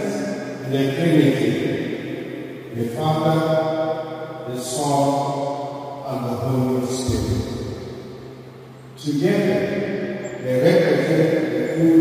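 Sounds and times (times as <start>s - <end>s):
man chanting into a microphone: 4.5s - 5.3s, 10.4s - 12.0s.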